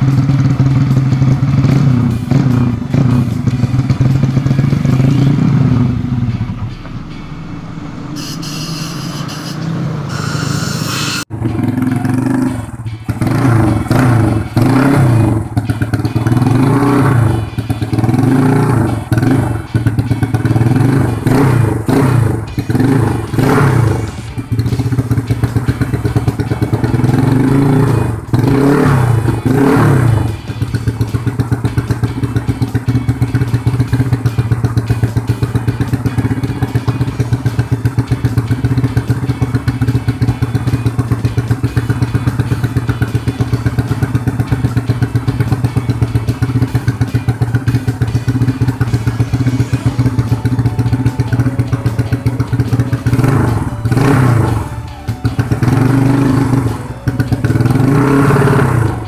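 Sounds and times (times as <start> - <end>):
motorcycle engine idling: 0.0 - 59.0.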